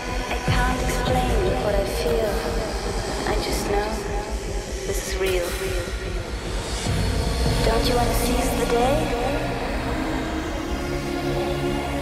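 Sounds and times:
deep steady bass: 0:00.0 - 0:12.0.

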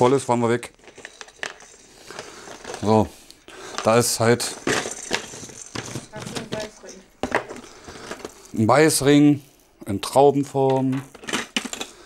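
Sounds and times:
plastic toys clicking in a jar: 0:10.6 - 0:12.0.

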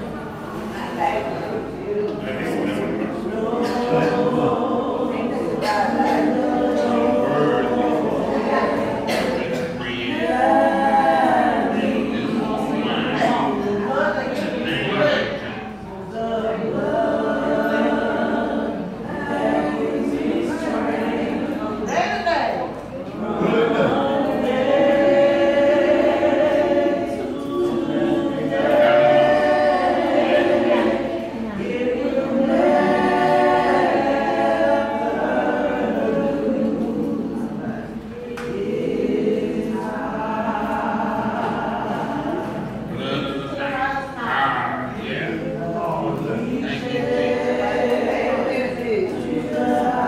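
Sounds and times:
unaccompanied singing voices: 0:00.0 - 0:50.0.

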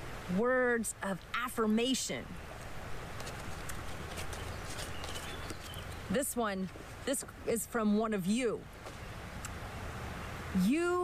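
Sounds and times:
outdoor hiss: 0:00.0 - 0:11.0
paper card rustling: 0:03.2 - 0:05.8.

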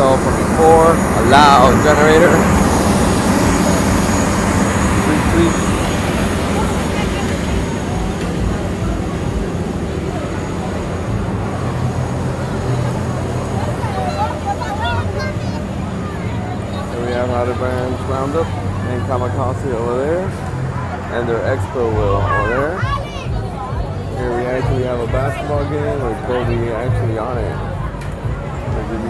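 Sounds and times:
crowd voices: 0:00.0 - 0:29.0
generator droning: 0:00.0 - 0:29.0.

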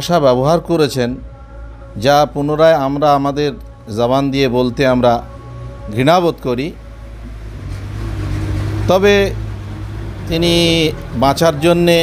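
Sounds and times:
motor vehicle: 0:00.0 - 0:12.0.

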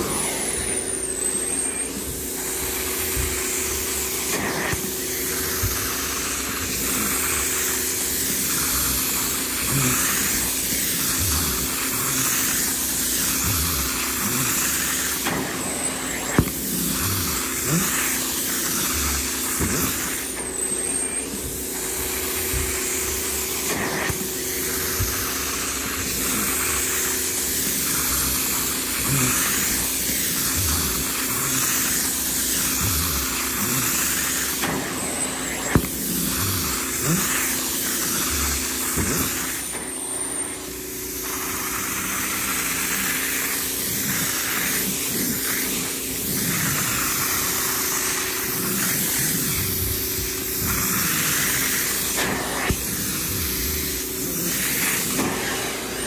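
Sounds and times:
hiss of suction and spray: 0:00.0 - 0:56.0
machine hum: 0:00.0 - 0:56.0.

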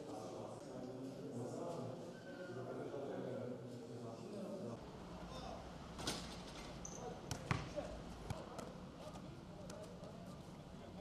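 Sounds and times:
steady background hum: 0:03.4 - 0:11.0.

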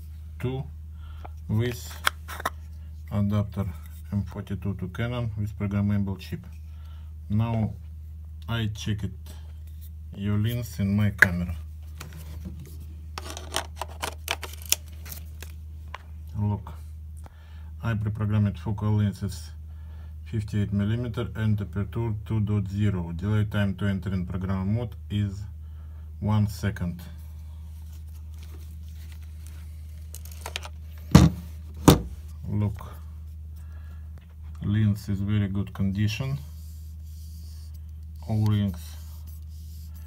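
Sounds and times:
steady low hum: 0:00.0 - 0:40.0
camera handling clicks and rustles: 0:13.2 - 0:15.6, 0:28.4 - 0:32.0.

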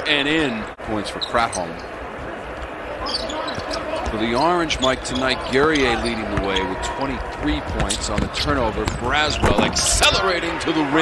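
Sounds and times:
shoe squeaks: 0:03.0 - 0:06.8.

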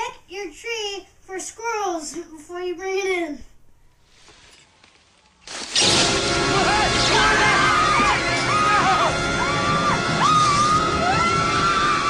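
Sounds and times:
dense noisy movie soundtrack: 0:05.8 - 0:12.0.

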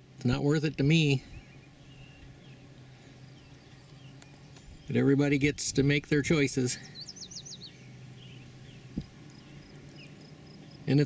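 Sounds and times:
faint steady low hum: 0:00.0 - 0:11.0
faint bird chirps: 0:06.7 - 0:11.0.

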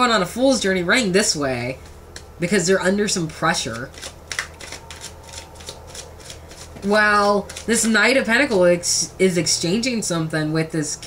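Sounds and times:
cards being shuffled: 0:03.6 - 0:08.0.

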